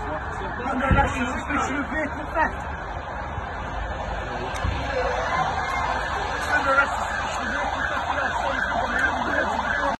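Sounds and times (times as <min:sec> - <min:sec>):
emergency vehicle siren: 0:00.0 - 0:10.0
street noise: 0:00.0 - 0:10.0.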